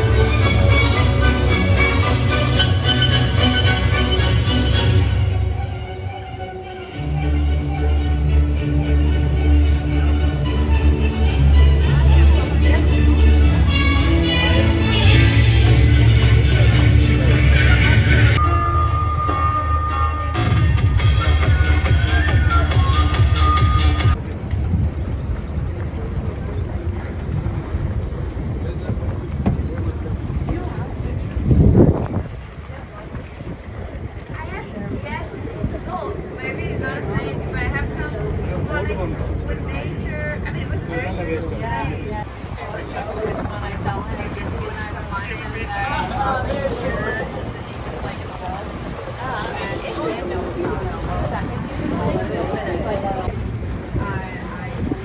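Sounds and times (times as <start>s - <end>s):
boat engine rumble: 0.0s - 55.0s
water noise: 0.0s - 55.0s
wind buffeting microphone: 24.1s - 55.0s.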